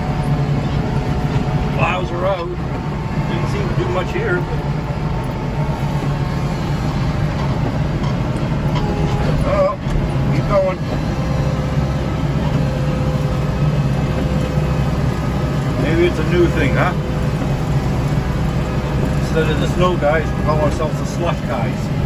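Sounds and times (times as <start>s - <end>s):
tractor diesel engine drone: 0.0s - 22.0s.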